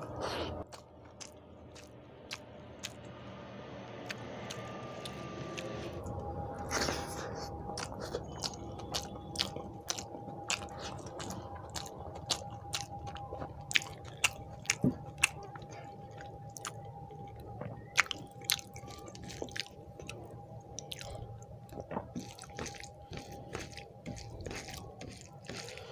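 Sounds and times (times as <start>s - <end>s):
close chewing: 0.0s - 3.1s, 4.0s - 25.9s
steady hum: 0.0s - 25.9s.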